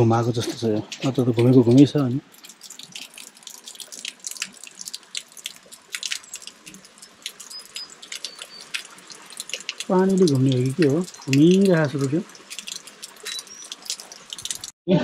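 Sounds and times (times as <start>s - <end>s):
water splashing into stone basin: 1.0s - 14.8s.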